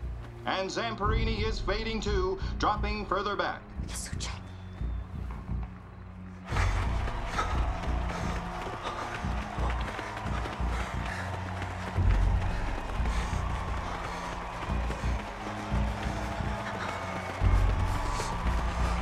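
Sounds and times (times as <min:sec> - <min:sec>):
film score music: 0:00.0 - 0:19.0
runners' footfalls: 0:04.4 - 0:19.0
stadium crowd noise: 0:04.8 - 0:19.0.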